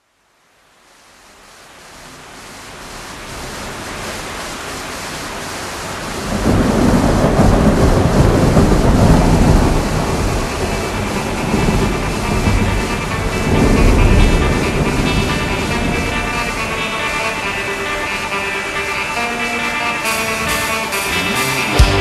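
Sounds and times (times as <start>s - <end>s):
rain hiss: 0.0s - 22.0s
thunder rolling: 5.9s - 19.1s
sustained musical tones: 11.2s - 22.0s.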